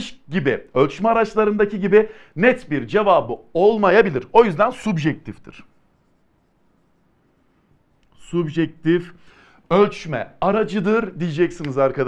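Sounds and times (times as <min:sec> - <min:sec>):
marker writing on whiteboard: 0:05.4 - 0:08.0.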